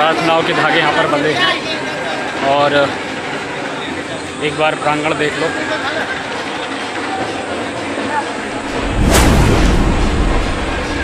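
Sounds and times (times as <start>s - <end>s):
deep low rumble: 8.5s - 11.0s
loud boom: 8.5s - 11.0s.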